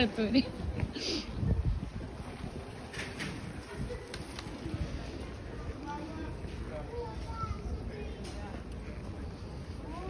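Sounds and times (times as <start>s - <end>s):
city street low rumble: 0.0s - 10.0s.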